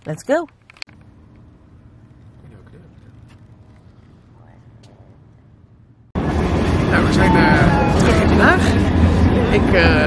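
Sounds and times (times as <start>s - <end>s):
low steady hum: 0.0s - 7.0s
loud rushing background noise: 6.2s - 10.0s.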